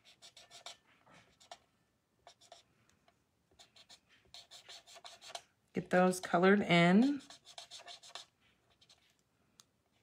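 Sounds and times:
marker scratching on cardstock: 0.0s - 2.6s, 3.5s - 5.5s, 7.0s - 9.1s.

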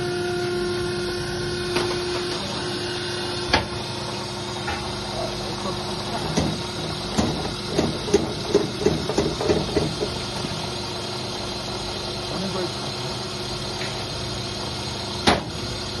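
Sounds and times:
machine sharp knock: 6.3s - 10.2s, 15.2s - 15.6s.

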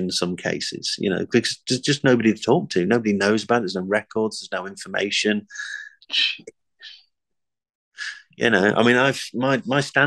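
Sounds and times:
faint breath: 5.5s - 6.0s.

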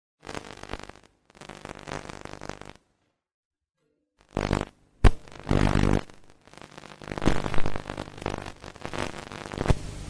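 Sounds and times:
distorted electronic buzzing bursts: 0.2s - 2.9s, 4.2s - 10.0s.

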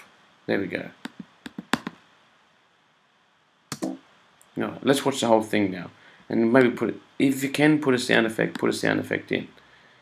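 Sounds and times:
computer mouse clicks: 1.0s - 2.0s.

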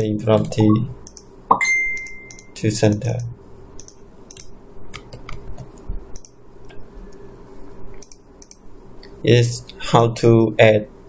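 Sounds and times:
faint steady hum: 0.0s - 11.0s
mouse and keyboard clicks: 2.0s - 6.4s.

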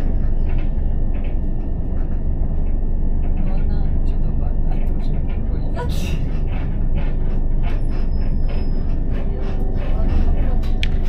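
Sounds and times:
train low rumble: 0.0s - 11.0s.

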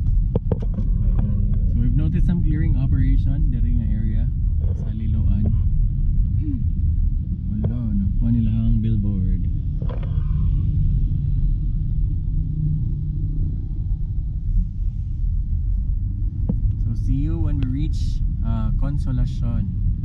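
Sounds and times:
car engine rumble in cabin: 0.0s - 20.0s.

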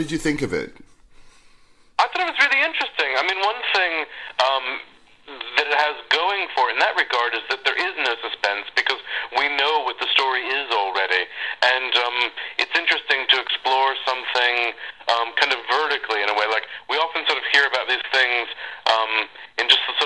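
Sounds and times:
person talking over a phone line: 2.0s - 20.0s.

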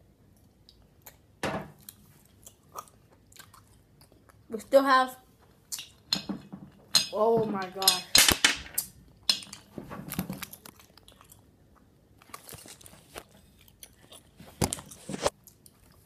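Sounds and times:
child chewing gum: 0.3s - 4.6s, 10.6s - 16.0s.

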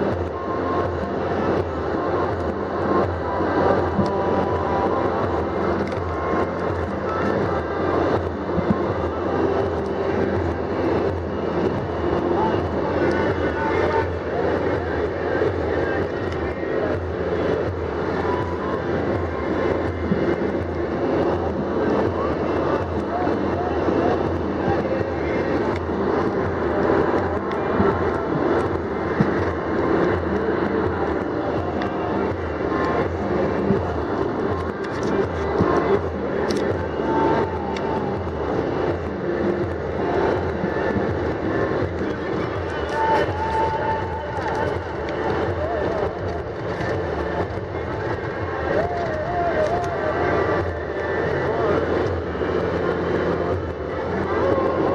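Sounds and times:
vehicle engine and road noise: 0.0s - 54.9s.

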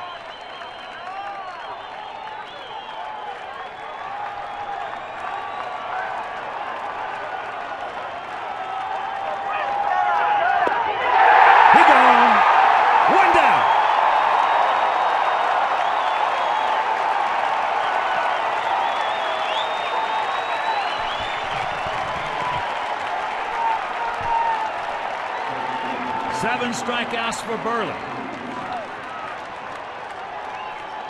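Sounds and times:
crowd cheering and whooping: 0.0s - 31.0s.

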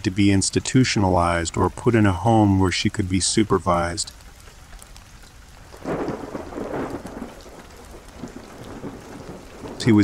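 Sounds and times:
rain falling: 0.0s - 10.0s
thunder rolling: 5.7s - 10.0s.

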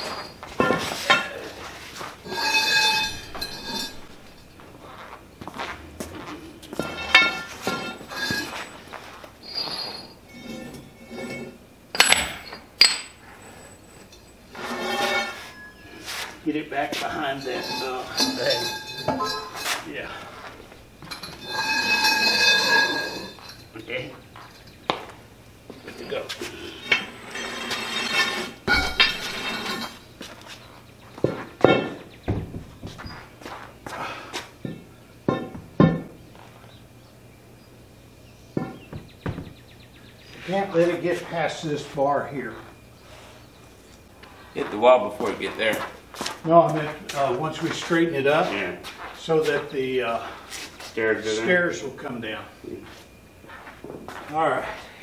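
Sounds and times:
steel pipes clinking and knocking: 0.0s - 1.6s, 2.2s - 5.0s, 6.7s - 15.9s, 16.9s - 25.1s, 25.7s - 30.2s, 31.2s - 33.2s, 34.6s - 36.2s, 38.6s - 39.5s.

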